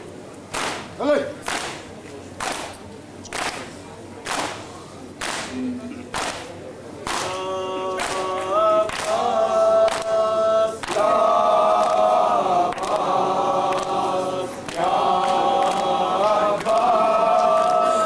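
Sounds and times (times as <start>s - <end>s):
hands slapping chests: 0.5s - 1.8s, 2.4s - 4.6s, 5.2s - 6.5s, 7.1s - 7.3s, 8.0s - 9.2s
men chanting in unison: 7.1s - 18.0s.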